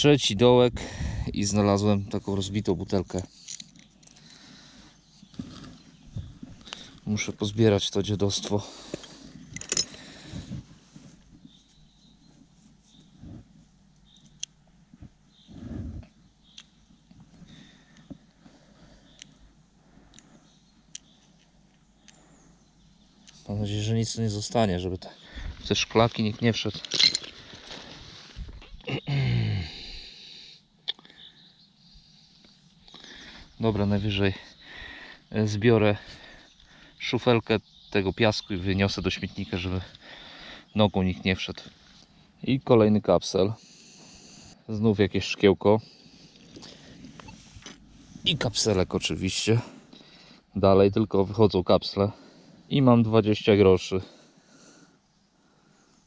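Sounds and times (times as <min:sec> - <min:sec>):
glass shards handled: 0:09.5 - 0:10.0, 0:26.7 - 0:27.4
man's breathy vocal noise: 0:28.9 - 0:30.6.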